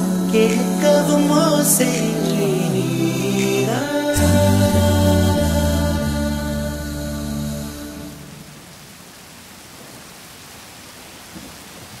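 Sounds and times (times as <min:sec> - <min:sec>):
a cappella singing: 0:00.0 - 0:08.4
steady rainfall: 0:07.6 - 0:12.0.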